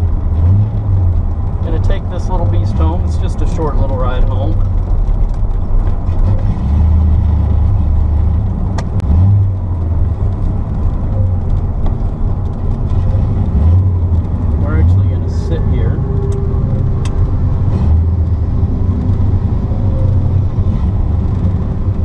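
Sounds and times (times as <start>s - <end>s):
car engine rumbling: 0.0s - 22.0s.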